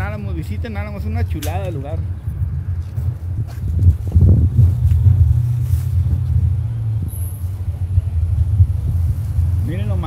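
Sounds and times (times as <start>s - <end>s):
motorcycle engine rumbling: 0.0s - 10.0s.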